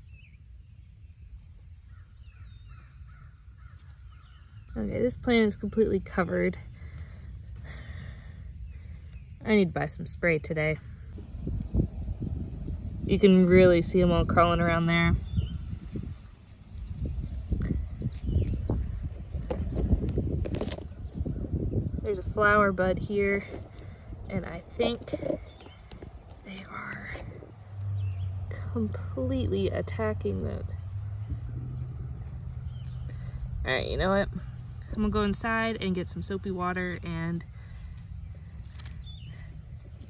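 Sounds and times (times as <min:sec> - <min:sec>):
wind rumble on microphone: 0:00.0 - 0:40.0.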